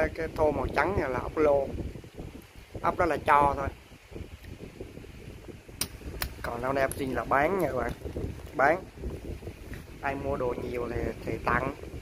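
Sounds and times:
wind buffeting microphone: 0.0 - 12.0.

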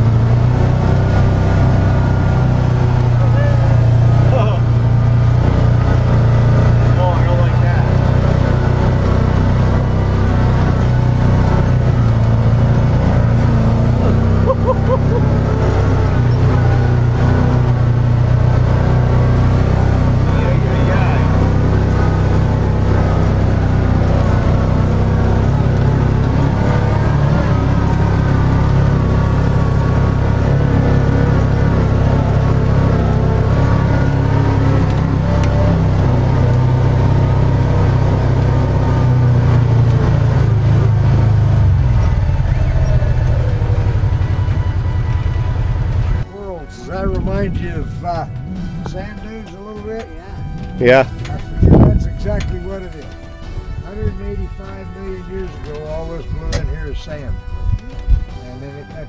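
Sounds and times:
vehicle engine running under load: 0.0 - 59.0.

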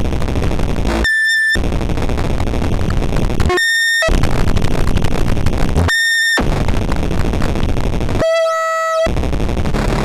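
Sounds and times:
harsh synthesizer noise: 0.0 - 10.0.

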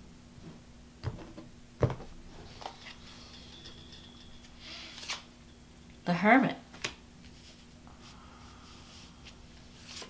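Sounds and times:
cards sliding and rustling: 4.6 - 5.3, 8.8 - 10.0.

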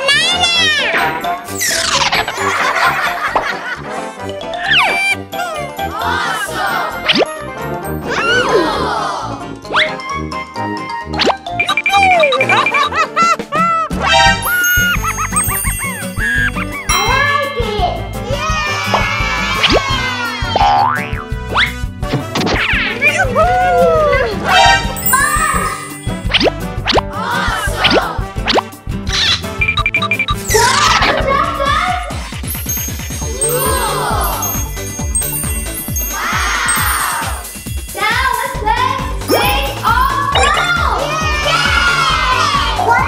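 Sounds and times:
children shouting and cheering: 0.0 - 1.0, 4.9 - 7.1, 8.0 - 9.6, 15.9 - 20.8, 22.9 - 26.1, 27.1 - 28.3, 30.5 - 32.2, 33.2 - 43.0
background music: 0.0 - 43.0
cartoon boing sound effects: 20.6 - 21.7.

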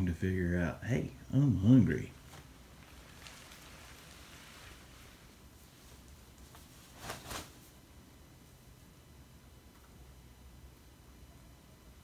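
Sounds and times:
footsteps in loose straw: 2.2 - 7.3.

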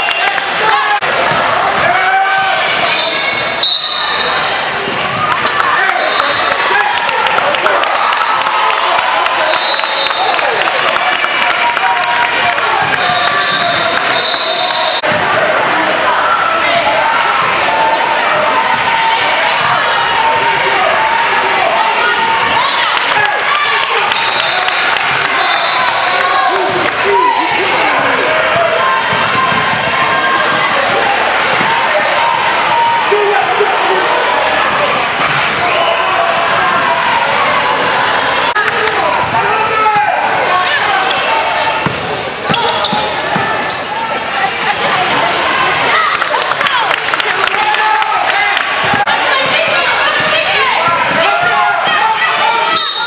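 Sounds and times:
voices echoing in a gym: 0.0 - 53.0.

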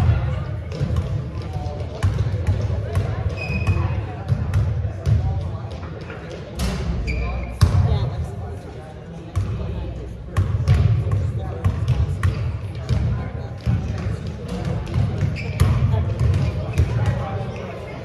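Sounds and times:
basketballs bouncing on gym floor: 0.0 - 6.4, 7.6 - 8.0, 9.4 - 9.7, 10.3 - 17.4.

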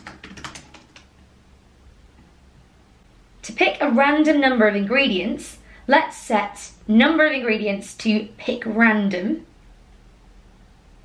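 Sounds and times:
typing on computer keyboard: 0.0 - 1.2.

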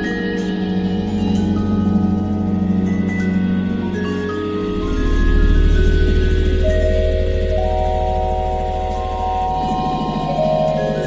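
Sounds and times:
electronic ambient music: 0.0 - 11.0.

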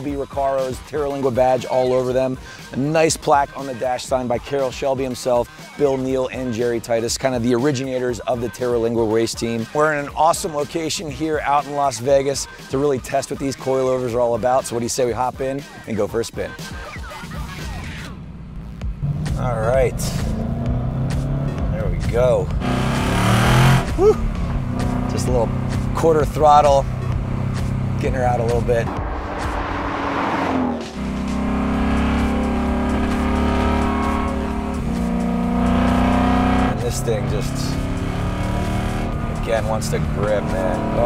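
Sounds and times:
background music: 0.0 - 41.0
car engine pulling away: 16.8 - 41.0
car passing by: 28.8 - 34.4.

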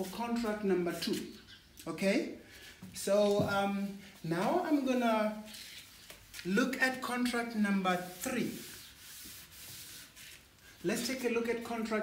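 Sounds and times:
cloth rubbing on chalkboard: 7.2 - 11.7.

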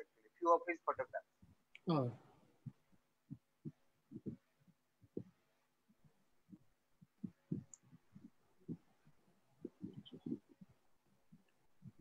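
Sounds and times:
faint low thumps: 1.9 - 5.4, 6.4 - 8.9, 9.6 - 10.8.

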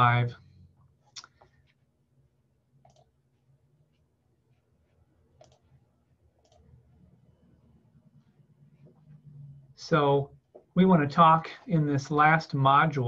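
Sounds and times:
computer mouse clicks: 2.8 - 3.1, 5.4 - 5.7, 6.4 - 6.7.

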